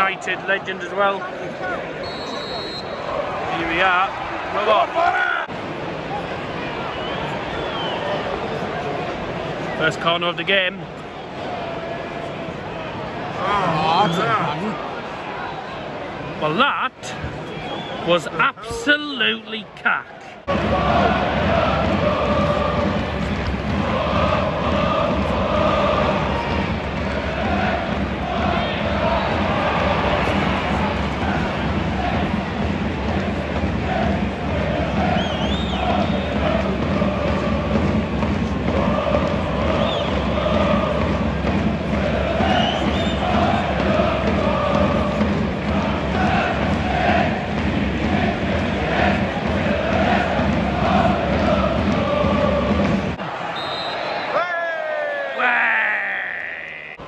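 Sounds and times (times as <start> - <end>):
crowd singing and chanting: 0.0 - 6.0, 20.2 - 57.0.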